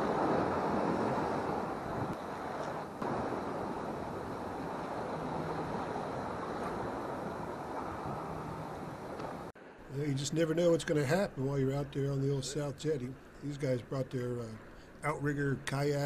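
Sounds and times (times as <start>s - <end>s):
wind buffeting microphone: 0.0s - 9.6s
surf washing over rocks: 0.0s - 11.0s.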